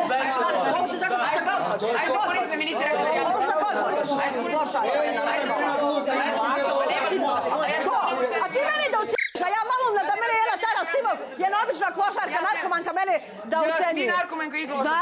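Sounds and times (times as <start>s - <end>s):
people talking over one another: 0.0s - 15.0s.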